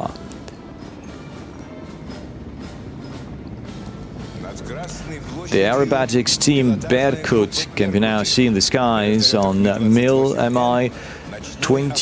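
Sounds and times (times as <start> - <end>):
faint beat: 0.0 - 12.0.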